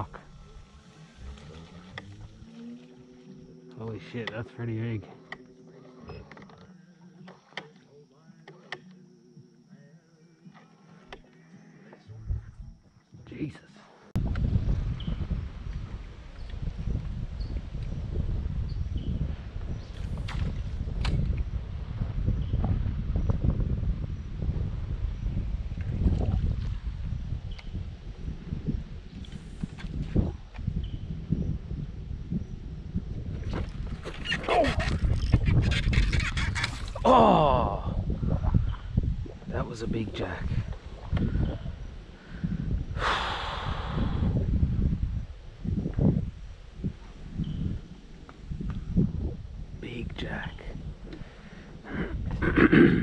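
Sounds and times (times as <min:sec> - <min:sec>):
wind rumbling on microphone: 0:00.0 - 0:06.4, 0:12.0 - 0:13.0, 0:14.1 - 0:53.0.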